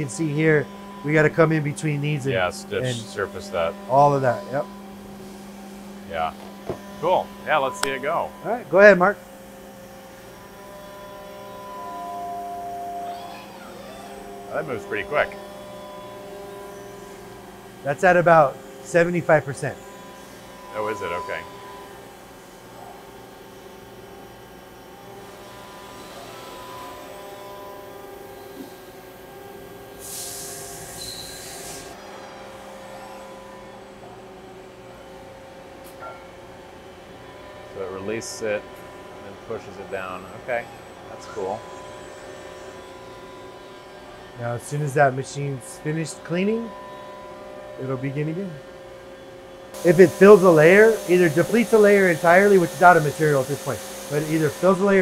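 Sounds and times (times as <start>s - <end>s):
faint whining tones: 0.0s - 23.2s
machinery hum: 0.0s - 55.0s
hiss: 30.0s - 32.0s, 49.8s - 55.0s.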